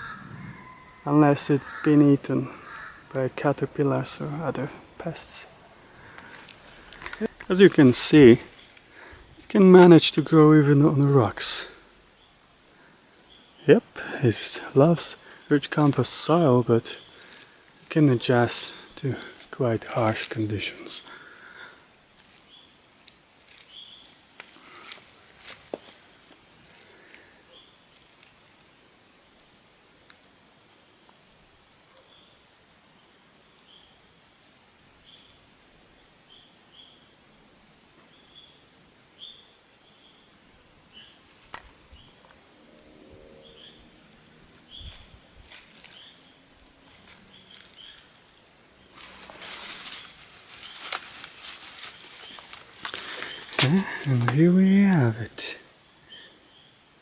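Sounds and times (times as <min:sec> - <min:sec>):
rustling of leaves and undergrowth: 0:00.0 - 0:32.5, 0:39.0 - 0:57.0.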